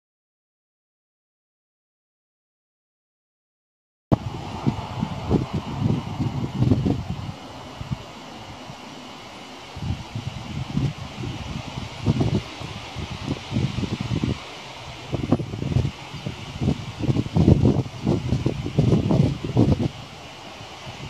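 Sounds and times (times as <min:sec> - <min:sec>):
thunder rumbling: 0:04.1 - 0:21.0.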